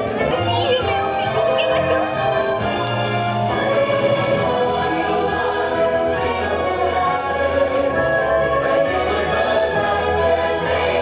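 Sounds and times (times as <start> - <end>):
orchestral music: 0.0 - 11.0
choir singing: 1.6 - 11.0.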